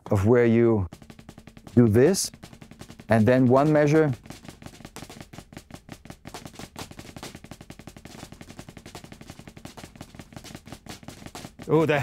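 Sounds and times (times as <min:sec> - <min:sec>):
drumsticks on rubber practice pad: 0:00.9 - 0:11.9.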